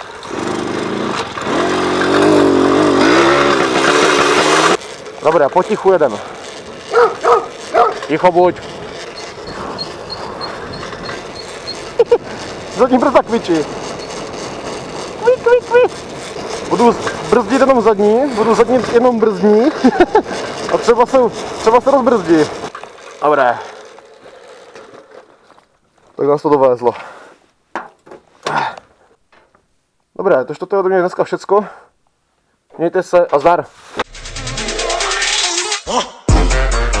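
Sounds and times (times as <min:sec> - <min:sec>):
tyre noise: 0:00.0 - 0:29.6
wind: 0:00.0 - 0:34.1
moped brake squeaking: 0:06.5 - 0:19.2.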